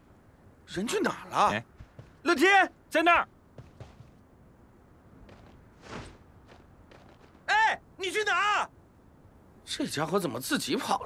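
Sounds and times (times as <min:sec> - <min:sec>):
faint footsteps: 0:01.5 - 0:02.3, 0:03.5 - 0:04.3.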